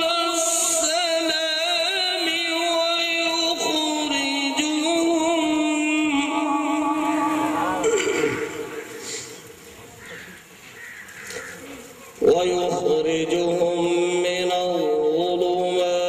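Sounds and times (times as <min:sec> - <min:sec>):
man chanting into microphone: 0:00.0 - 0:09.0, 0:12.2 - 0:16.0.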